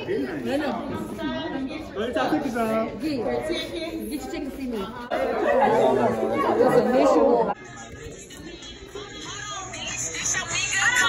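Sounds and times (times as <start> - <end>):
people talking over each other: 0.0 - 8.1.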